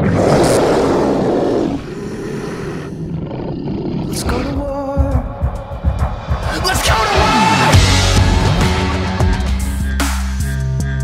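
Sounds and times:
dinosaur roar: 0.0s - 7.8s.

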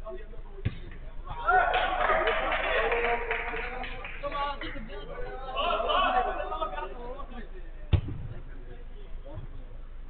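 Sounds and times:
players calling and chattering: 0.0s - 10.0s
football thud: 7.9s - 8.4s.

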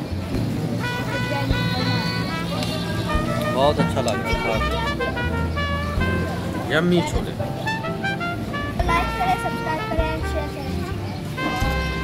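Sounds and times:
background music with held notes: 0.0s - 12.0s
vehicle engines running: 0.0s - 12.0s.

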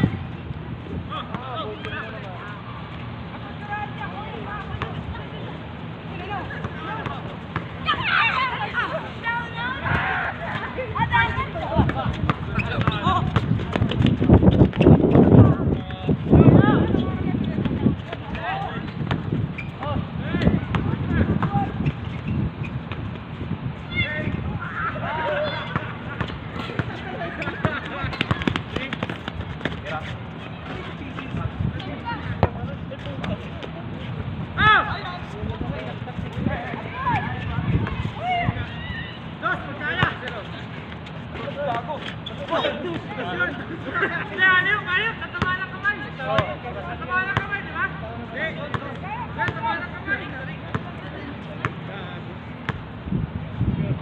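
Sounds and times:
basketball players shouting: 3.4s - 14.0s, 23.8s - 31.3s, 36.6s - 48.0s
running footsteps on court: 6.3s - 24.5s, 25.3s - 38.3s
shoes on hard court: 11.6s - 15.6s, 25.3s - 34.2s
ball bouncing: 25.7s - 29.8s.

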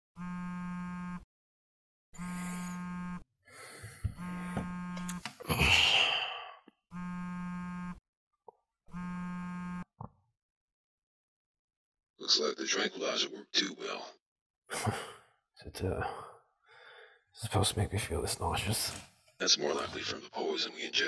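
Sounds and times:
harsh electronic buzzer: 0.2s - 1.3s, 2.1s - 5.3s, 6.9s - 8.0s, 8.9s - 9.9s.

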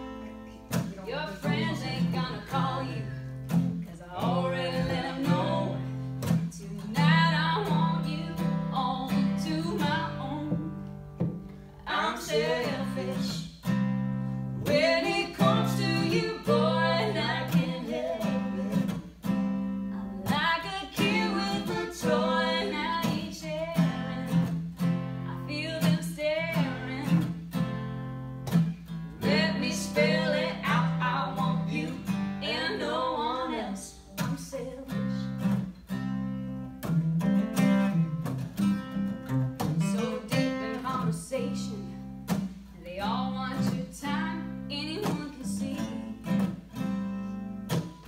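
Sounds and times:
acoustic guitars strummed: 0.0s - 48.0s
person singing: 14.6s - 19.0s, 20.1s - 24.5s.

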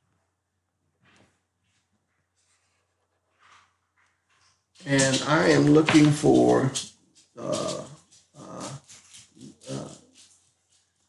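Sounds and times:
man saying uh: 4.8s - 6.8s, 7.4s - 8.8s, 9.4s - 10.0s.

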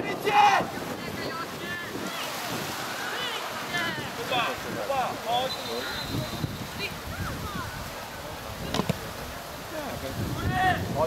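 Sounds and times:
wind rumble on microphone: 0.0s - 2.9s, 3.5s - 11.0s.

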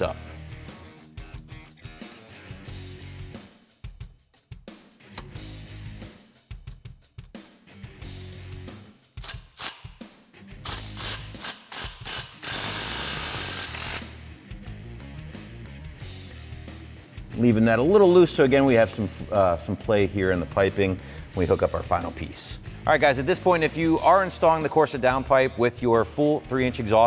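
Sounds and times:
cordless electric ratchet running: 9.2s - 9.9s, 10.6s - 14.3s.

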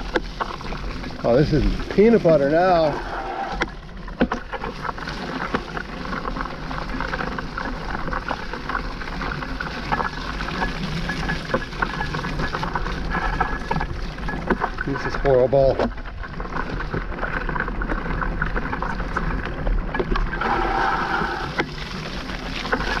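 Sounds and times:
bike clicking and rattling: 0.0s - 23.0s
bike tyres rolling through mud: 0.0s - 23.0s.

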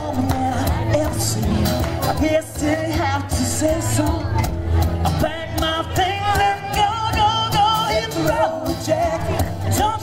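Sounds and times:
acoustic guitars strummed: 0.0s - 10.0s.

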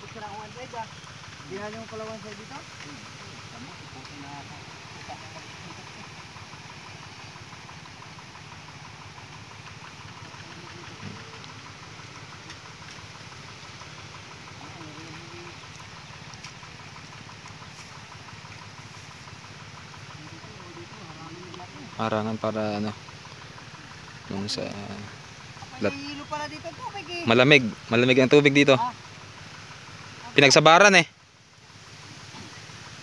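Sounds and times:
water pump engine humming: 0.0s - 33.0s.

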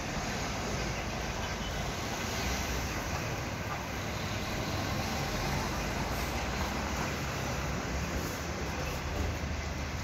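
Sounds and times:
distant road traffic rumble: 0.0s - 10.0s.

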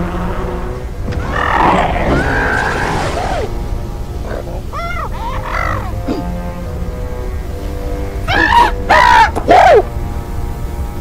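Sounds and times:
monster growling calls: 0.0s - 3.6s, 4.2s - 6.4s, 8.3s - 9.9s
steady low rumble: 0.0s - 8.9s.

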